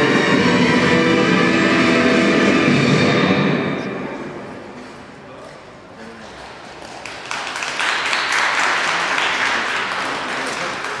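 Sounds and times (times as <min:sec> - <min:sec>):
audience applauding: 0:06.6 - 0:11.0.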